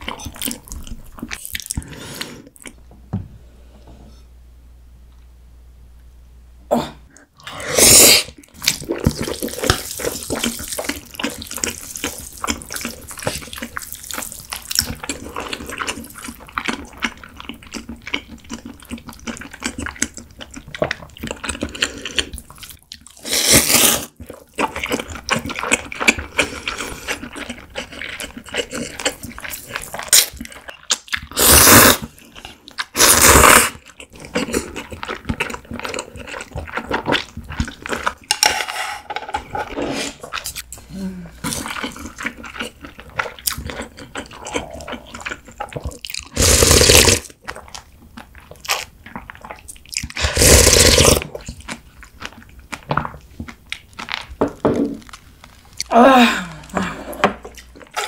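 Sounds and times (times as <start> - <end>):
loud noodle slurps: 7.4 - 8.4, 23.2 - 24.1, 31.3 - 32.1, 33.0 - 33.8, 39.6 - 40.3, 46.3 - 47.3, 50.2 - 51.3
chewing with wet smacking: 8.4 - 23.2, 24.1 - 31.4, 33.7 - 38.3, 41.4 - 46.4, 47.2 - 50.2, 50.9 - 54.4.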